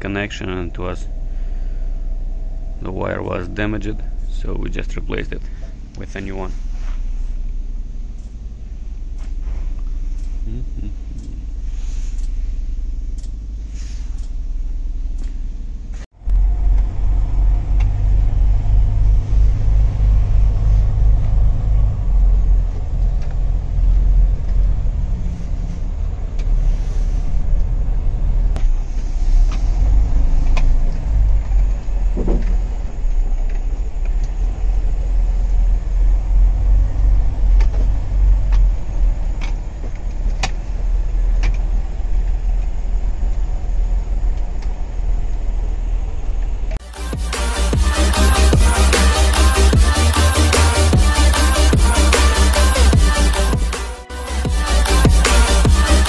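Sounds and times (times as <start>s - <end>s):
truck diesel engine rumbling: 0.0s - 56.0s
sharp ticks: 10.1s - 15.4s.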